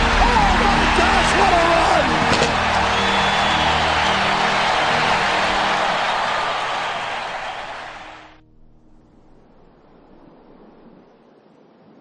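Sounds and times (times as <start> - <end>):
stadium crowd cheering: 0.0 - 8.4
steady music bed: 0.0 - 8.4.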